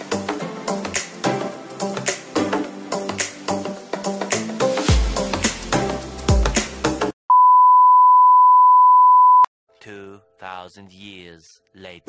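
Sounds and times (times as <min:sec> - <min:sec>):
high pure tone beep: 0:07.3 - 0:09.5.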